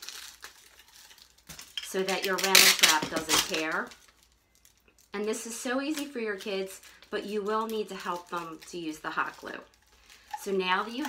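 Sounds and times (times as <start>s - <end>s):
aluminium foil crinkling: 0.0s - 11.0s.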